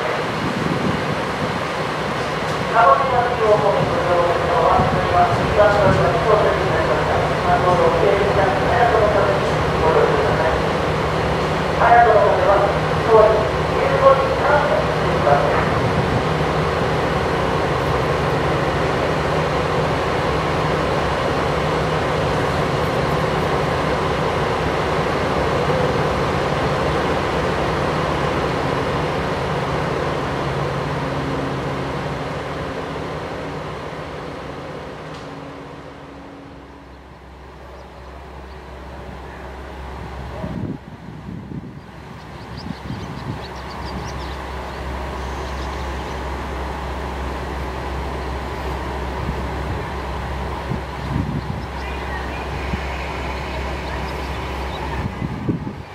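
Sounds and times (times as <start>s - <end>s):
diesel railcar engines idling: 0.0s - 55.9s.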